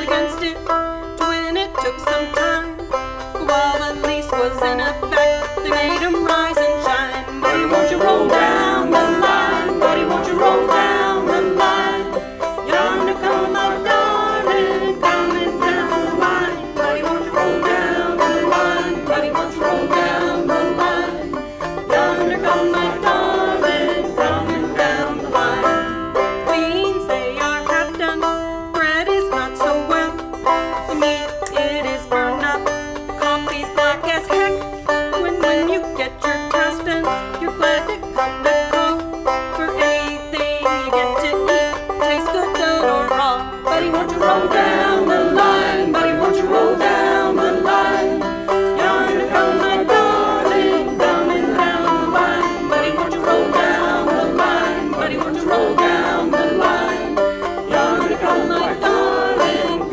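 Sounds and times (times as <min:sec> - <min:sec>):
banjo picking: 0:00.0 - 0:59.9
woman singing: 0:00.0 - 0:59.9
acoustic guitars: 0:02.7 - 0:29.2, 0:41.2 - 0:59.9.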